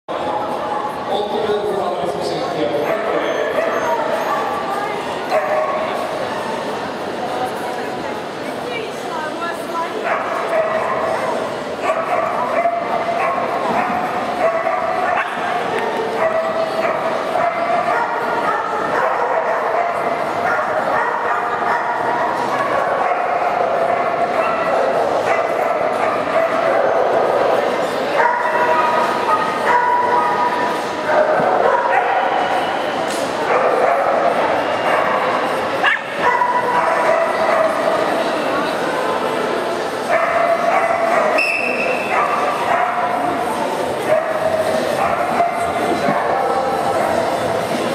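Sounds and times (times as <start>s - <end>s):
hubbub of voices: 0.1s - 47.9s
dogs barking and yipping: 2.8s - 6.1s, 10.0s - 38.2s, 40.0s - 47.9s.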